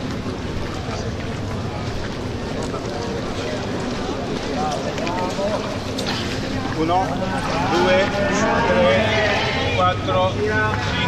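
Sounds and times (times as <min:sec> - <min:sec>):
voices talking in echoing hall: 0:00.0 - 0:11.0.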